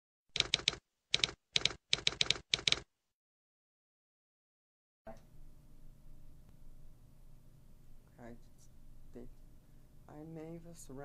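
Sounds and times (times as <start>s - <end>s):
typewriter key strikes: 0.4s - 2.8s.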